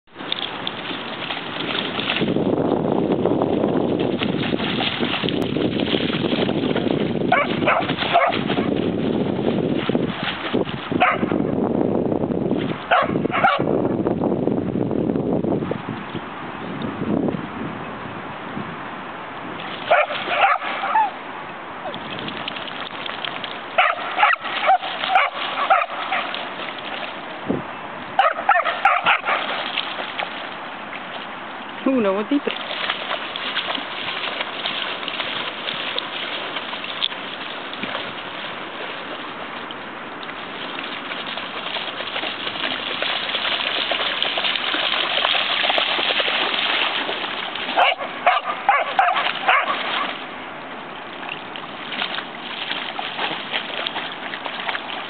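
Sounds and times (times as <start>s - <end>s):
dog splashing through water: 0.1s - 13.7s, 19.5s - 55.0s
dog barking: 7.3s - 8.4s, 11.0s - 11.3s, 12.9s - 13.7s, 19.9s - 21.1s, 23.8s - 26.3s, 28.2s - 29.4s, 47.8s - 50.1s.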